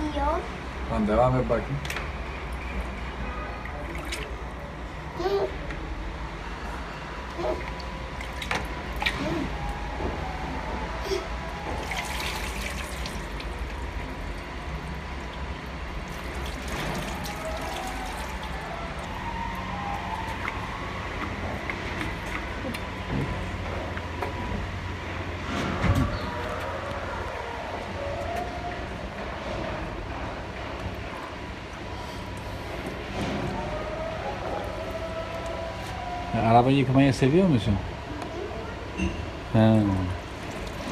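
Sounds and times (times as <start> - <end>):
water splashing on plastic: 3.7 - 4.4, 11.6 - 19.2, 40.3 - 40.9.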